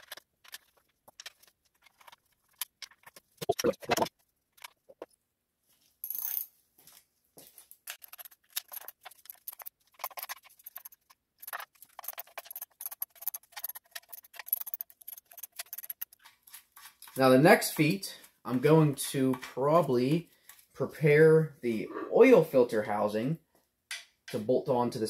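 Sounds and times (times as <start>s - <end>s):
metal clinks and knocks: 7.8s - 16.3s.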